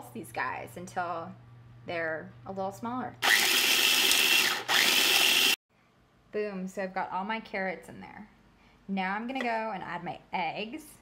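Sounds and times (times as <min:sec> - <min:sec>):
food processor motor pulsing: 0:03.2 - 0:05.6.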